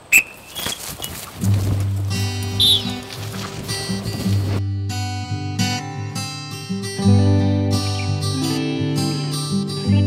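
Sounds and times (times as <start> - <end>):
acoustic guitar music: 1.4 - 10.0.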